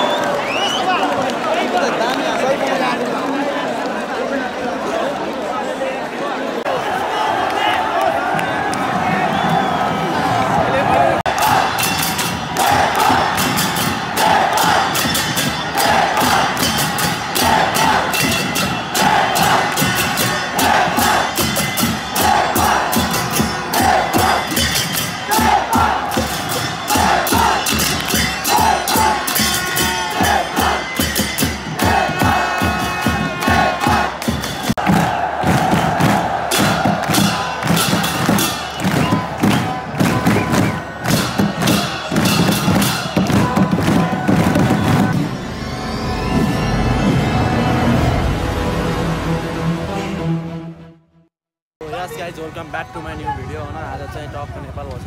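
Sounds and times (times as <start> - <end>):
crowd chanting and cheering: 0.0 - 50.9
fast steady beat: 11.3 - 45.4.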